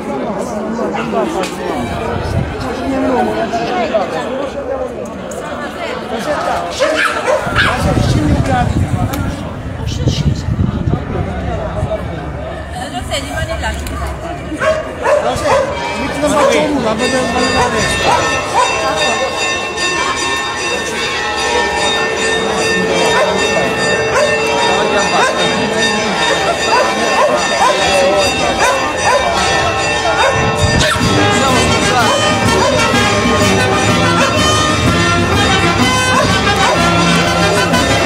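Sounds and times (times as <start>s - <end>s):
crowd chatter: 0.0s - 38.0s
dog barking: 6.8s - 7.9s, 14.6s - 16.7s, 18.1s - 18.8s, 24.2s - 24.4s, 26.7s - 27.9s, 28.6s - 29.4s, 30.2s - 31.1s, 36.1s - 37.0s
music playing: 17.3s - 38.0s.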